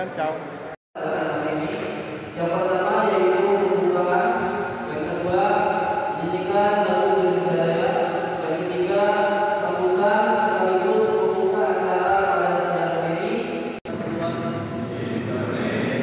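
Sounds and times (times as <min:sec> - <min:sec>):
man chanting through microphone: 0:00.0 - 0:16.0.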